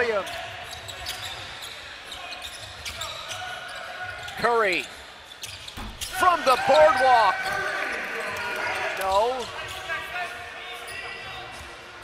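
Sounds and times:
murmur of arena crowd: 0:00.0 - 0:12.0.

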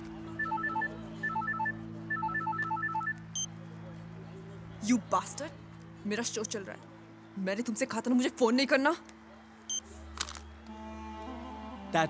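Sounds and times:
phone ringtone beeps: 0:00.4 - 0:03.5.

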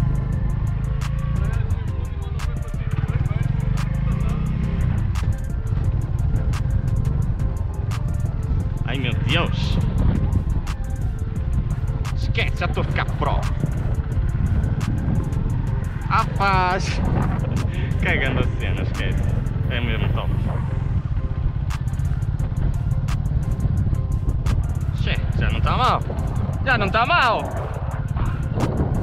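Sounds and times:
background music with singing: 0:00.0 - 0:29.0
motorcycle engine running: 0:00.0 - 0:29.0
wind on microphone: 0:00.0 - 0:29.0.

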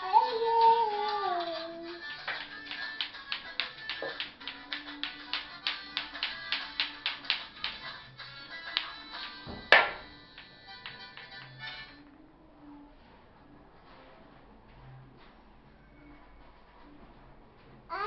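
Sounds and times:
faint music: 0:00.0 - 0:18.0
clacker toy balls clicking: 0:02.2 - 0:08.0, 0:08.7 - 0:11.8.

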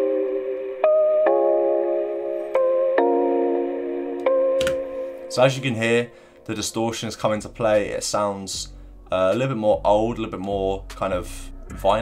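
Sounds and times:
lo-fi distorted chords: 0:08.6 - 0:12.0.

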